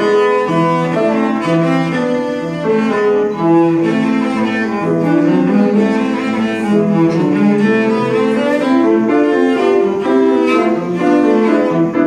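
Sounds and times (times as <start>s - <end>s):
bowed cello: 0.0s - 12.0s
piano accompaniment: 0.0s - 12.0s.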